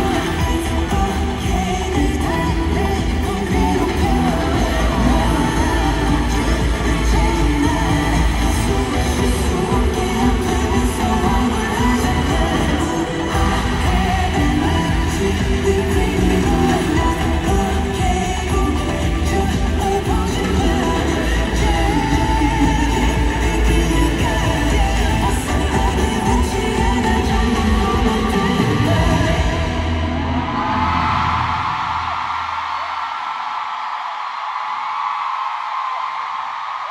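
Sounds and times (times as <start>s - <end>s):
heavy bass beat: 0.0s - 30.3s
person singing: 0.0s - 31.8s
crowd yelling and screaming: 0.0s - 36.9s.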